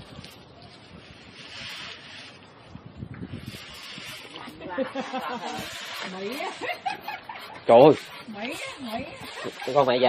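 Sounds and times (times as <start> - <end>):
hand saw rasping through wood: 3.3 - 10.0.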